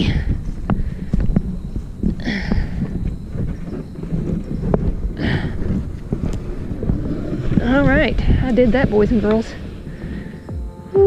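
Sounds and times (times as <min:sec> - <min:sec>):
kayak hull scraping and dragging: 0:00.5 - 0:10.5
breathy bursts: 0:02.1 - 0:03.0, 0:05.1 - 0:05.9, 0:09.5 - 0:10.8.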